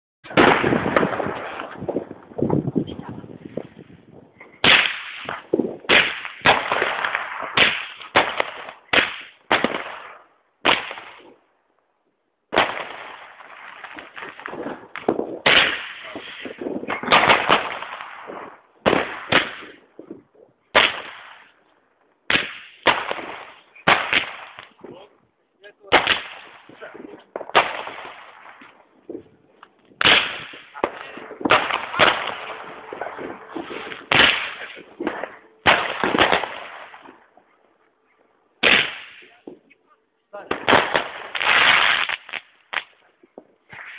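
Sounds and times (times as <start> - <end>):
firework reports with echo: 0.2 - 11.4, 12.5 - 21.7, 22.3 - 37.6, 38.6 - 43.9.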